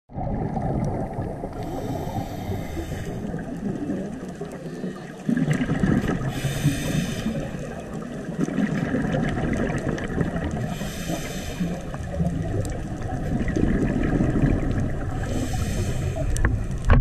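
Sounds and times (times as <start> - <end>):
muffled underwater rush: 0.1 - 17.0
thin hiss: 6.3 - 7.4, 10.7 - 11.8.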